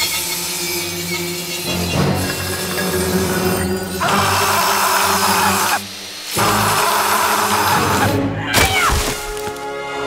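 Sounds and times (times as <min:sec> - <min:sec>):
grinding wheel grinding steel: 0:00.0 - 0:08.0
background music: 0:00.0 - 0:10.0.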